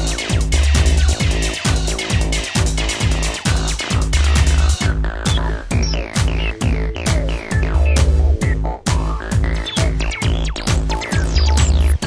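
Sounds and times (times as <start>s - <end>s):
kick drum: 0.0s - 12.0s
squelchy acid synth line: 4.8s - 12.0s.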